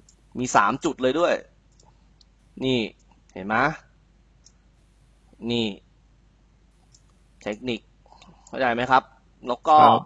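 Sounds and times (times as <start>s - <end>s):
man speaking: 0.4s - 1.4s, 2.6s - 3.8s, 5.4s - 5.8s, 7.5s - 7.8s, 8.6s - 10.0s.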